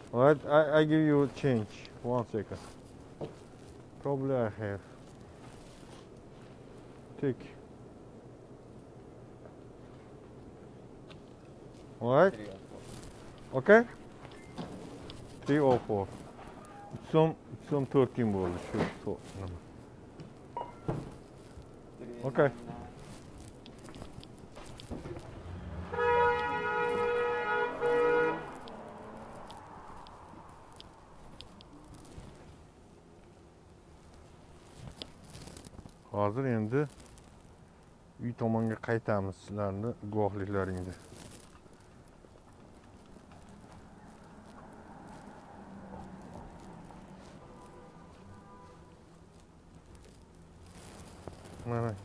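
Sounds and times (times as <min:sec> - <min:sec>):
low steady street hum: 0:00.0 - 0:52.0
car horn honking: 0:16.5 - 0:17.2, 0:25.5 - 0:29.1, 0:47.4 - 0:49.0.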